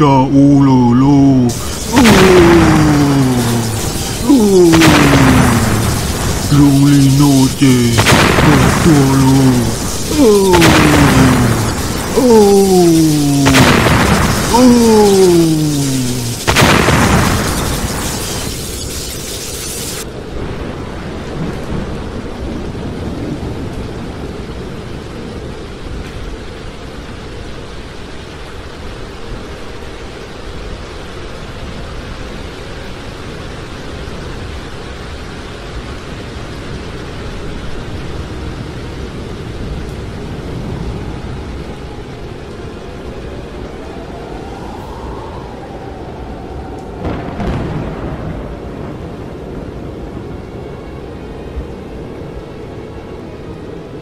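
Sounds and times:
heavy rain: 0:00.0 - 0:54.0
rumbling thunder: 0:01.5 - 0:06.5, 0:07.9 - 0:12.2, 0:12.9 - 0:25.1, 0:43.0 - 0:50.5
thunder crash: 0:01.5 - 0:24.2, 0:43.4 - 0:50.2.

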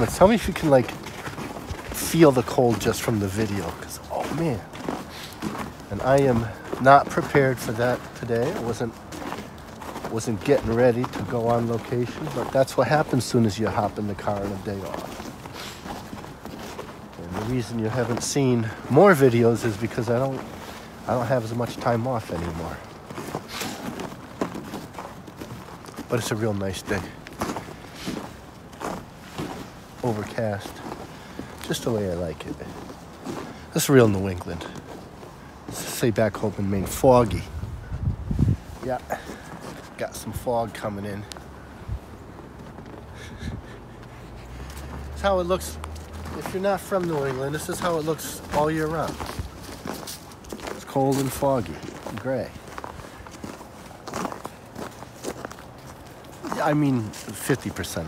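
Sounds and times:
footsteps on a footbridge: 0:00.0 - 0:58.0.

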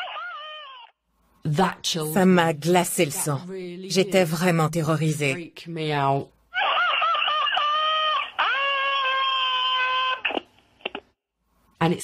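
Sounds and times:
person screaming: 0:00.0 - 0:00.9, 0:06.6 - 0:10.3.

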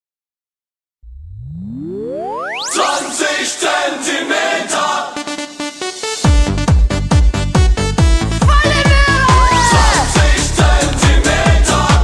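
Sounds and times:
rising synthesized sweep: 0:01.0 - 0:03.7.

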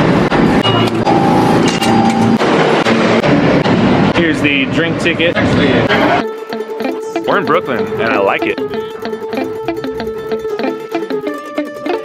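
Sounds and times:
subway train rumble: 0:00.0 - 0:06.2.

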